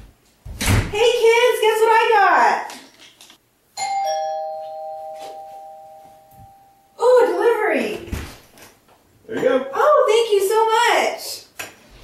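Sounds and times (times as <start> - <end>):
doorbell chime ding-dong: 3.8 - 7.0.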